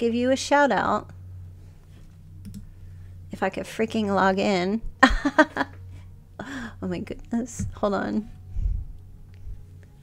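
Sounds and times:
steady low hum: 0.0s - 10.0s
computer clicks: 2.4s - 2.7s.

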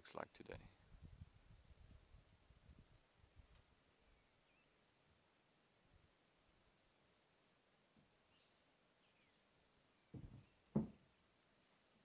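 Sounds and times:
birds chirping: 4.0s - 4.9s, 8.1s - 11.0s
low thumps: 10.1s - 11.0s.

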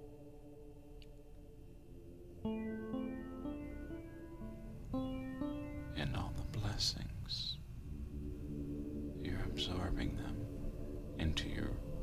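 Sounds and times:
ambient music with drones: 0.0s - 12.0s
person whispering: 6.0s - 7.6s, 9.2s - 10.4s.

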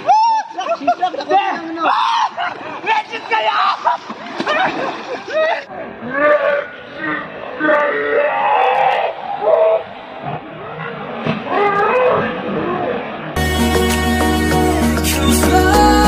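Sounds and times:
young men shouting and whooping: 0.0s - 4.1s
water splashing: 2.4s - 5.7s.

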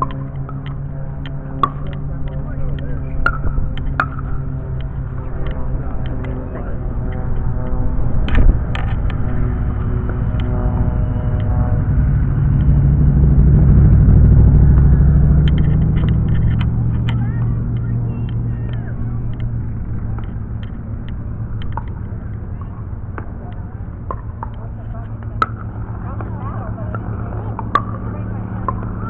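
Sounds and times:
vehicle passing with low rumble: 0.0s - 29.0s.

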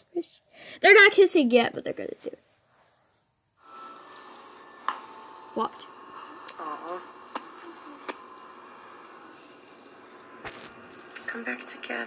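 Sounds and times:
faint steady hiss and hum: 0.0s - 12.0s.

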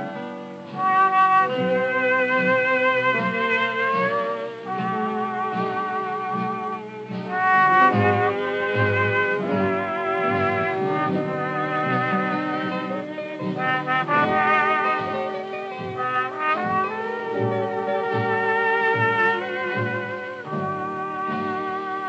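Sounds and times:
swing band with brass: 0.0s - 22.0s.

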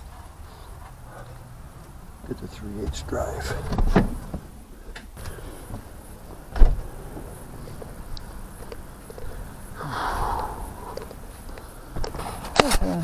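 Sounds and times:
door banging shut: 2.9s - 4.5s, 6.5s - 6.9s.

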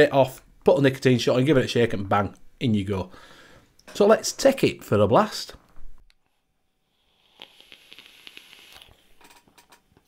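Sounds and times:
vape coil sizzling: 6.8s - 9.2s.

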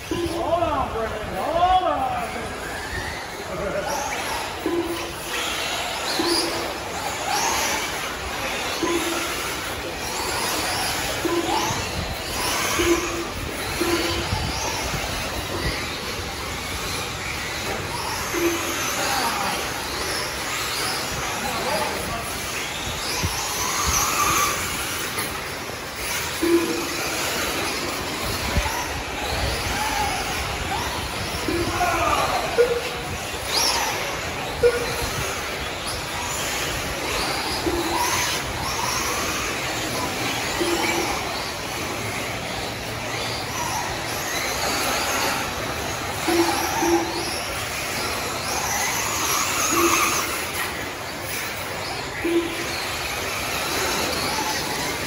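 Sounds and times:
high electric motor whines: 0.0s - 55.0s.

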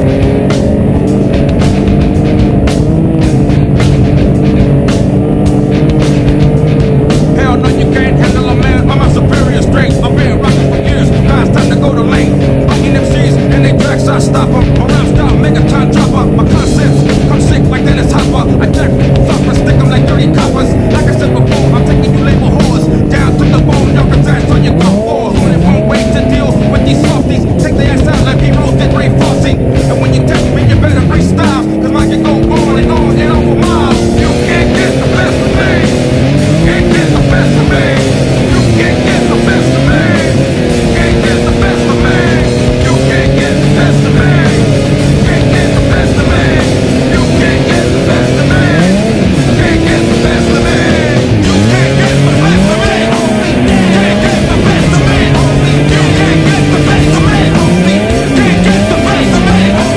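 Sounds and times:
snowmobile engine running: 0.0s - 59.9s.

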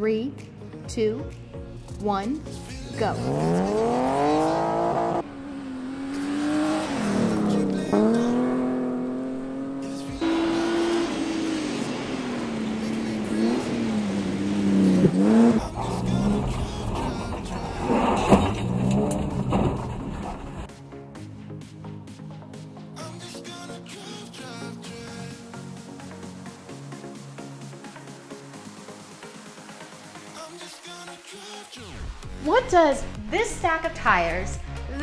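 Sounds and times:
rally car engine revving: 2.6s - 20.7s.

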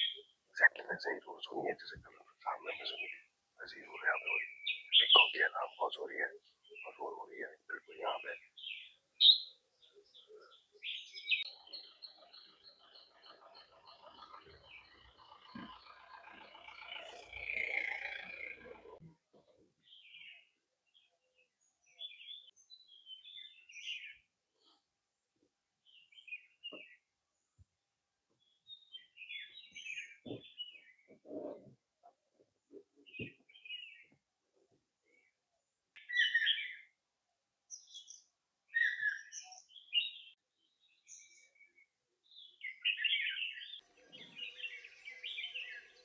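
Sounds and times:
small birds chirping: 0.0s - 24.9s, 25.8s - 27.7s, 28.3s - 35.4s, 36.0s - 37.0s, 37.7s - 46.0s.

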